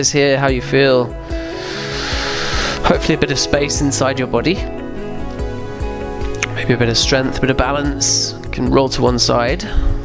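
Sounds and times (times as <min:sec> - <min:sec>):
soft background music: 0:00.0 - 0:10.0
person exhaling breathily: 0:01.4 - 0:02.9.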